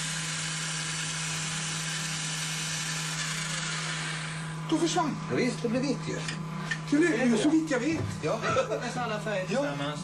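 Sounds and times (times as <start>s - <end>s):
small electric motor whirring: 0.0s - 5.0s.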